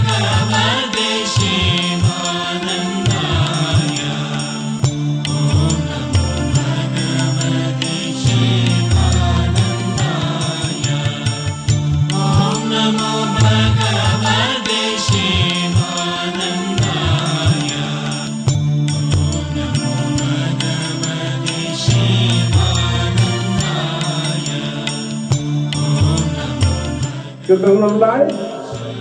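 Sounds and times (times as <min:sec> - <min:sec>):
chanting over a drone: 0:00.0 - 0:29.0
percussion beat: 0:00.0 - 0:29.0.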